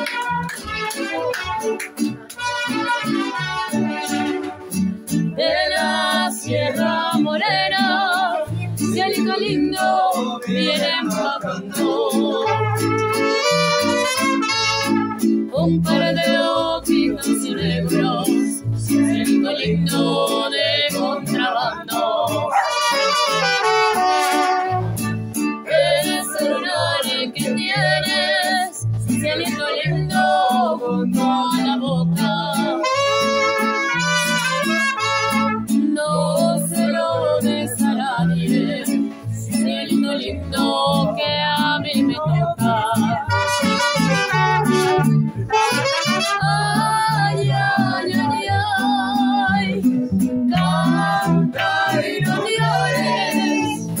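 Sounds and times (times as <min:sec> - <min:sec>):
trumpet: 0:00.0 - 0:04.8, 0:12.3 - 0:15.4, 0:22.5 - 0:25.2, 0:32.7 - 0:35.8, 0:43.3 - 0:46.8
bass guitar line: 0:00.0 - 0:54.0
strummed guitars: 0:00.0 - 0:54.0
saxophone: 0:12.4 - 0:15.3, 0:22.5 - 0:25.1, 0:32.7 - 0:35.8, 0:43.3 - 0:46.6.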